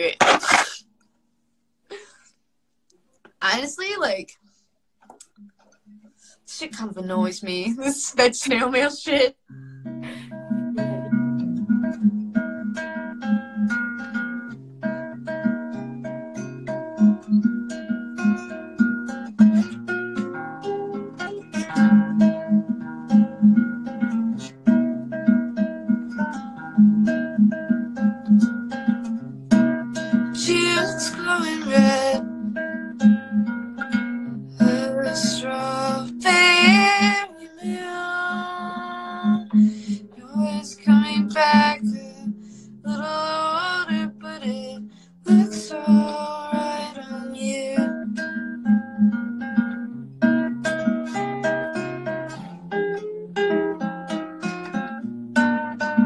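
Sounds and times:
acoustic guitar picking: 0:09.5 - 0:56.0
person singing: 0:30.4 - 0:32.2, 0:34.6 - 0:42.3, 0:42.9 - 0:48.0.

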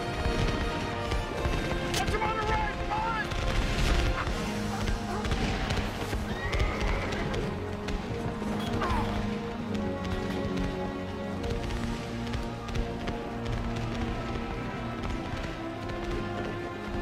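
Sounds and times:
film music: 0:00.0 - 0:17.0
horses whinnying: 0:04.1 - 0:07.6.

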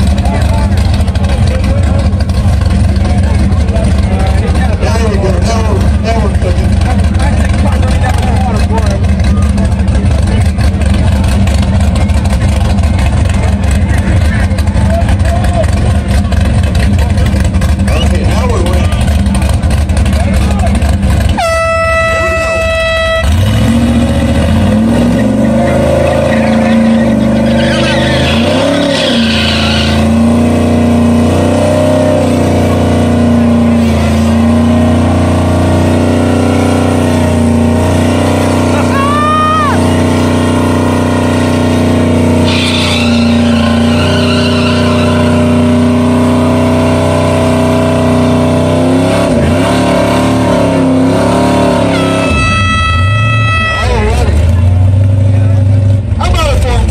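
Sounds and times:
car engine revving: 0:00.0 - 0:56.9
air horn blast: 0:21.3 - 0:23.5, 0:51.8 - 0:54.5.

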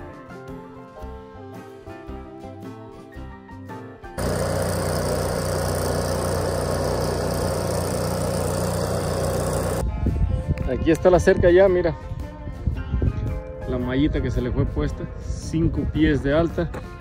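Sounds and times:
arc welding crackling hiss: 0:04.2 - 0:09.8.

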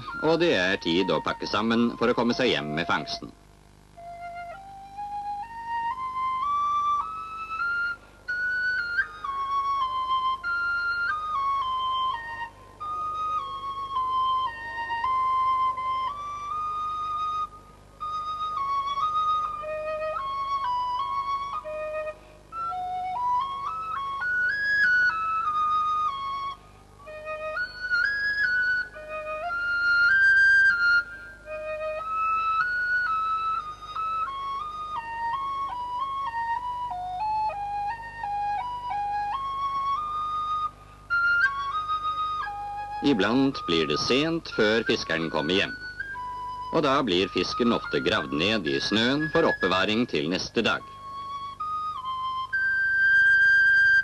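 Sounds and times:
solo flute slow melody: 0:00.0 - 0:54.0.

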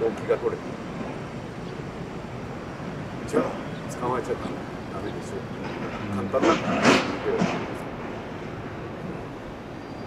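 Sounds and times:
city park background rush: 0:00.0 - 0:10.0.

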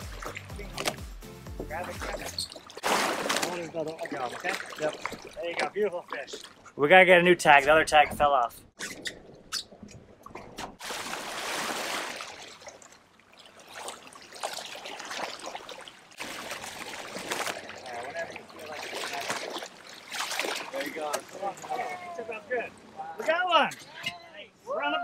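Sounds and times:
water rushing and splashing: 0:00.0 - 0:07.9, 0:10.7 - 0:24.0.

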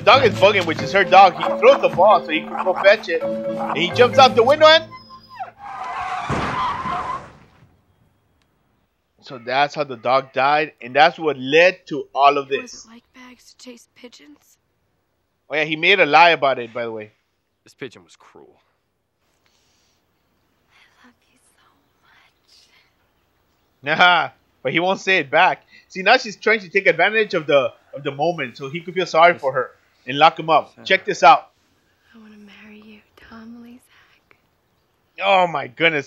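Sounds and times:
car tyres screeching: 0:00.0 - 0:07.6
person whispering: 0:20.7 - 0:23.0.

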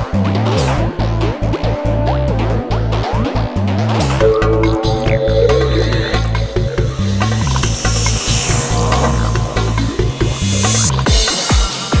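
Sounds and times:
stepping bass line: 0:04.2 - 0:11.2
electronic trance music: 0:04.2 - 0:11.5.

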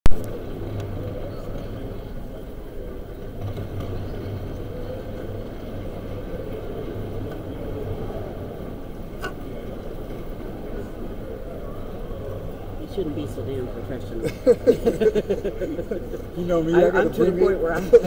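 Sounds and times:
murmur of people talking: 0:00.1 - 0:18.0.

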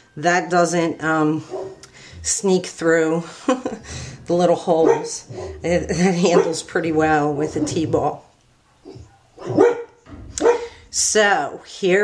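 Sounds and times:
dog barking: 0:01.5 - 0:01.8, 0:04.8 - 0:06.7, 0:08.7 - 0:10.8.

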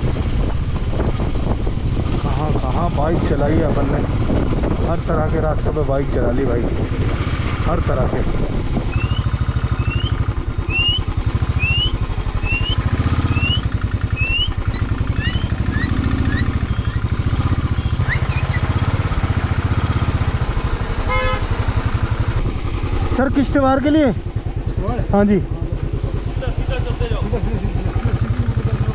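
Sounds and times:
motorcycle engine running: 0:00.0 - 0:28.9
high rising chirps: 0:08.9 - 0:19.5.

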